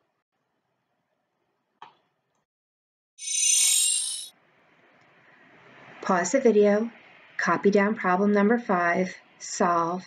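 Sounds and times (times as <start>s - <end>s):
bright chiming sound effect: 3.2s - 4.3s.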